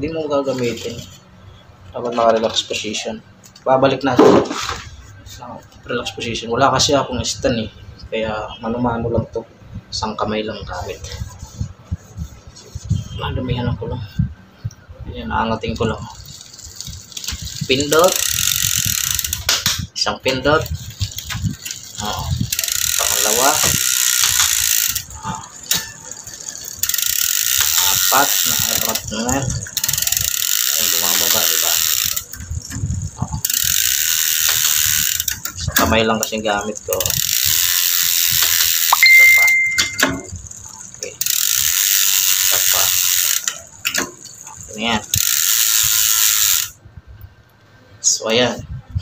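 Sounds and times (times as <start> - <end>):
bicycle freehub ratchet clicking: 0.5 - 1.3, 15.8 - 46.8.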